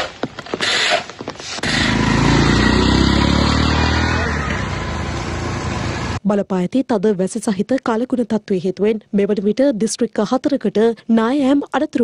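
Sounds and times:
auto-rickshaw engine passing: 1.6 - 6.2.

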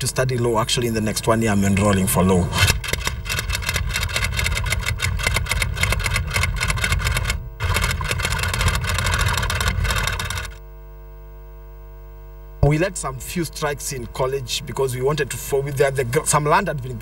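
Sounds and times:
steady low hum: 0.0 - 17.0
rapid mechanical clatter: 2.6 - 10.6.

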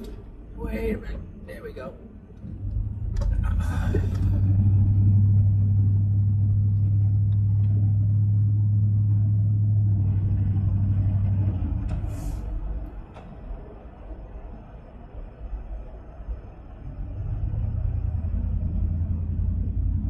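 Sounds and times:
car cabin rumble: 2.4 - 13.8.

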